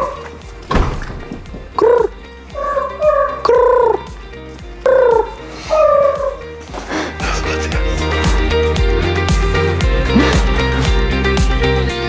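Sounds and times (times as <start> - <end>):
faint steady backing music: 0.0 - 12.0.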